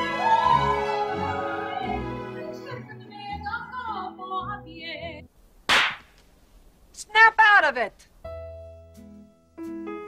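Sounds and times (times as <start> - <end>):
woman singing opera: 0.0 - 5.2.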